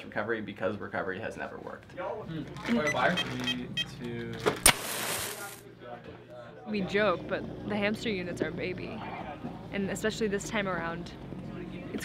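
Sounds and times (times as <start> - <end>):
electric igniter popping: 4.4 - 5.6
burning sparks hissing: 4.6 - 5.6.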